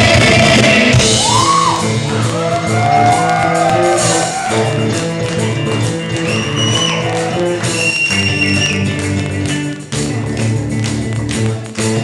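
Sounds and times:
heavy metal band playing: 0:00.0 - 0:10.6.

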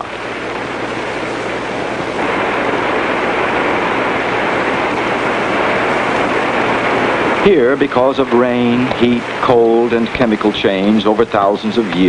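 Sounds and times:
stream cascading over rock: 0:00.0 - 0:12.0.

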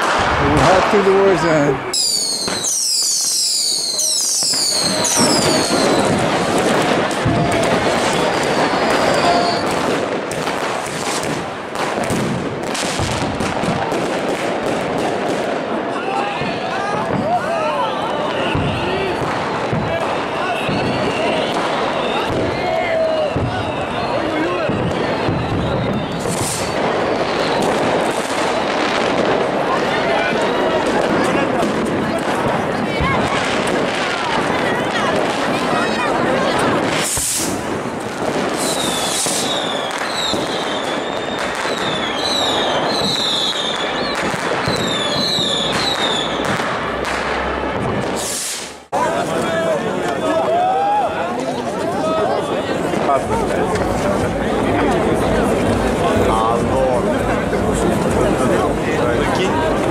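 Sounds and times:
fireworks bangs and crackles: 0:00.0 - 0:59.9
high falling firework whistles: 0:01.9 - 0:10.2, 0:20.2 - 0:29.2, 0:35.6 - 0:48.9.

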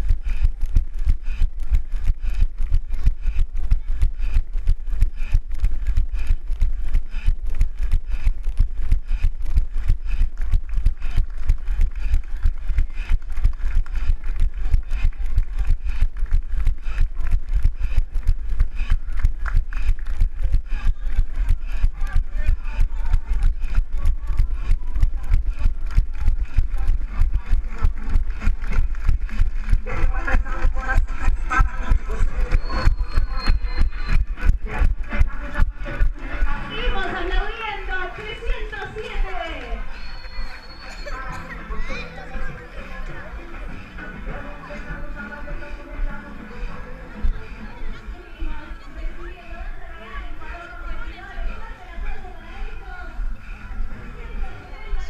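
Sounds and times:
low microphone rumble: 0:00.0 - 0:40.6
crowd chatter: 0:00.0 - 0:55.0
running footsteps on asphalt: 0:00.0 - 0:55.0.

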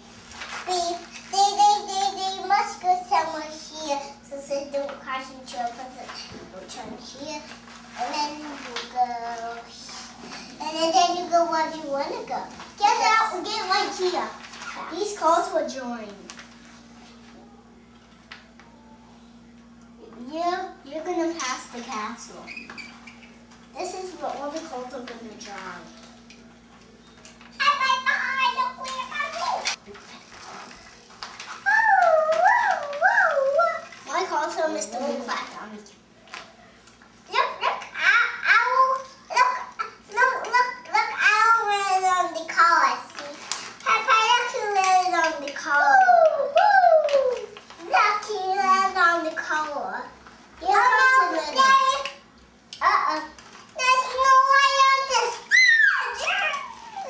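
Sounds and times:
child babbling: 0:56.0 - 0:57.0.

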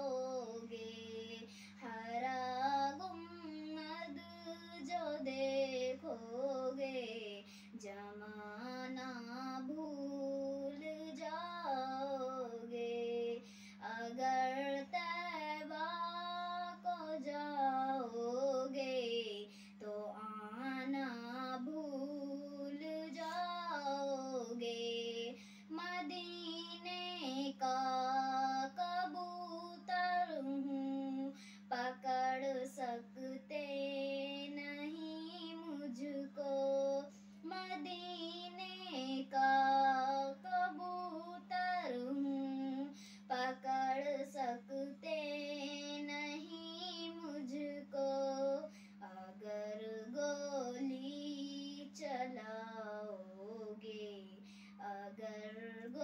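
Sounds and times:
girl singing unaccompanied: 0:00.0 - 0:56.0
steady low hum: 0:00.0 - 0:56.0.

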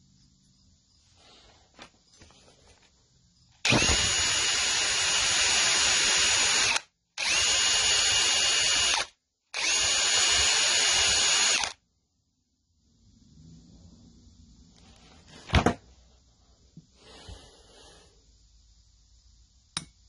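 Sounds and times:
drill spinning wire brush: 0:03.6 - 0:11.8.

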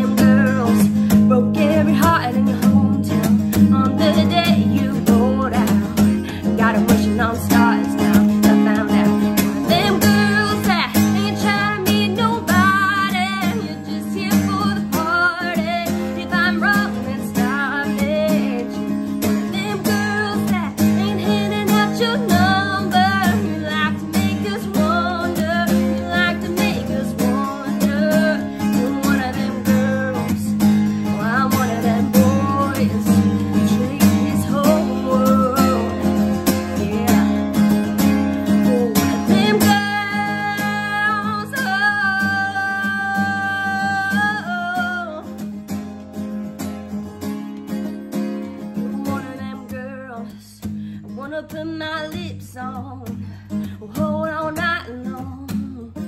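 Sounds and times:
woman singing: 0:00.0 - 0:46.4, 0:47.0 - 0:56.0
acoustic guitar strumming: 0:00.0 - 0:56.0.

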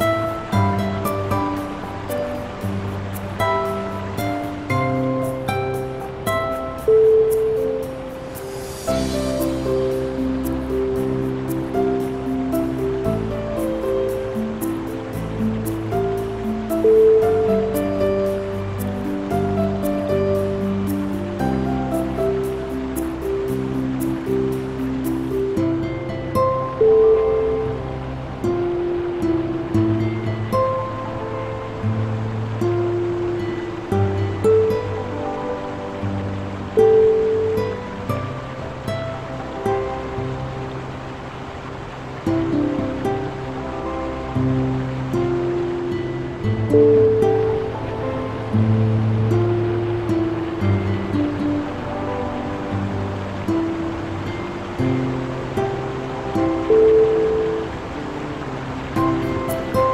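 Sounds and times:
fast-flowing river rushing: 0:00.0 - 0:59.9
slow piano music: 0:00.0 - 0:59.9.

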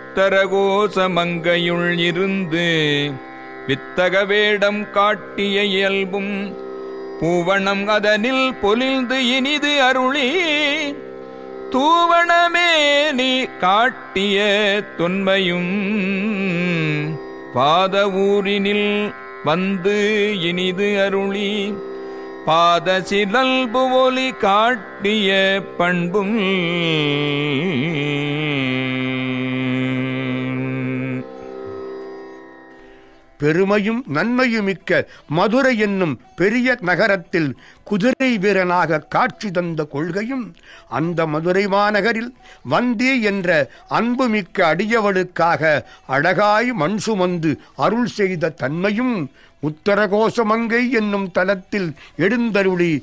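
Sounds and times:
man singing a devotional hymn: 0:00.1 - 0:06.6, 0:07.2 - 0:11.0, 0:11.7 - 0:21.8, 0:22.4 - 0:31.3, 0:33.4 - 0:53.0
person singing a hymn: 0:11.8 - 0:32.1.

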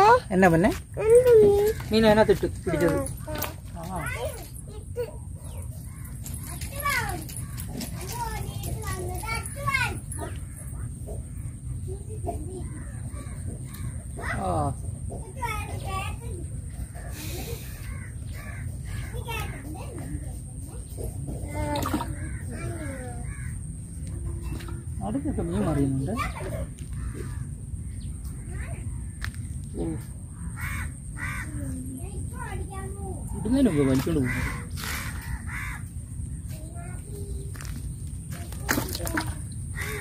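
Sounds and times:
bird calling: 0:33.3 - 0:40.0.

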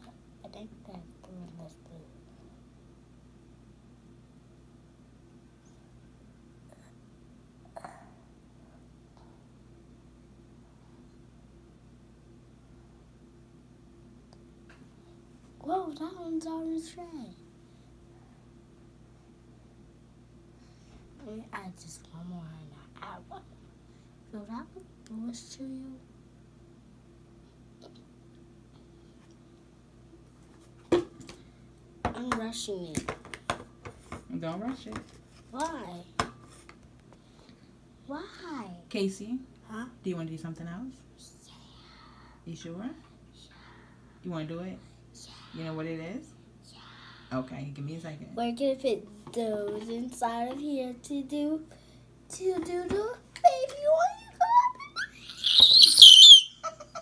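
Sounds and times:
child giggling: 0:54.3 - 0:57.0
child squealing: 0:54.4 - 0:57.0.

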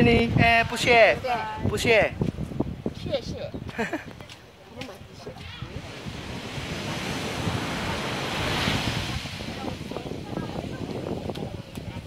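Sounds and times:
surf washing on beach: 0:00.0 - 0:12.0
wind rumbling on microphone: 0:00.0 - 0:12.0.

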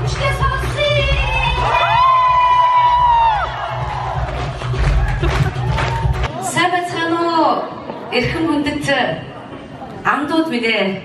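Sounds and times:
live music with heavy bass beat: 0:00.0 - 0:06.3
crowd cheering: 0:00.0 - 0:06.6.

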